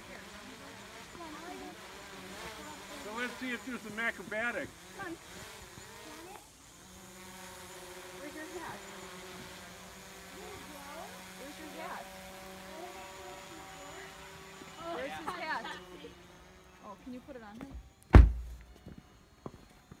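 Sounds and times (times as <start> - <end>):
voices: 0.0 - 6.7, 8.1 - 17.9
drone propellers humming: 0.0 - 20.0.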